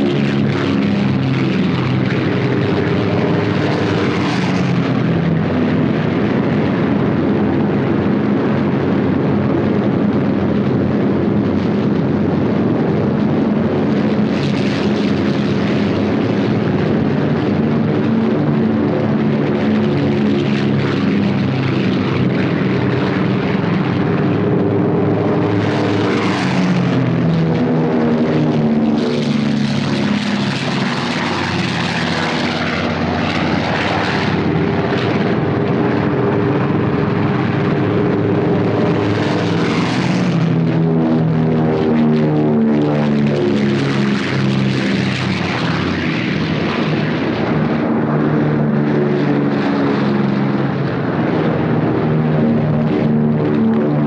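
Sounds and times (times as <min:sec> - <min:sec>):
aircraft passing low: 0:00.0 - 0:54.0
propeller aircraft engines droning: 0:00.0 - 0:54.0.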